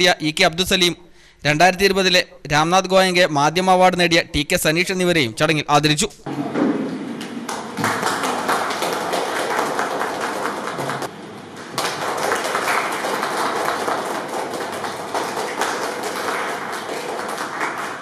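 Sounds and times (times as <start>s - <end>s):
people clapping: 6.9s - 18.0s.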